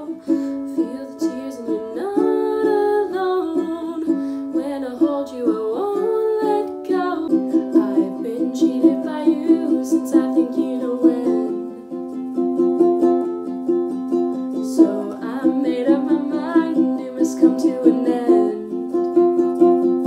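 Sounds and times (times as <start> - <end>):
ukulele strumming: 0.0 - 20.0
woman singing: 0.0 - 20.0.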